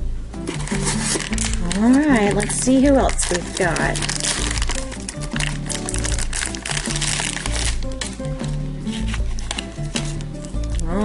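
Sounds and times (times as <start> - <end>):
background music: 0.0 - 11.0
foil wrapper crinkling: 0.5 - 11.0.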